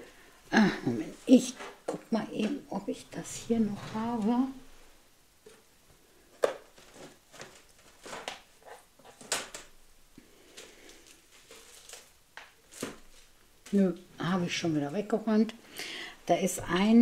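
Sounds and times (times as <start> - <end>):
rummaging through craft supplies: 6.3 - 9.7.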